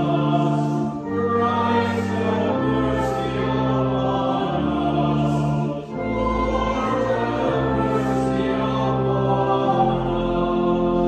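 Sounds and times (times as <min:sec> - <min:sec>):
church organ chords: 0:00.0 - 0:11.0
voices singing together: 0:00.0 - 0:11.0.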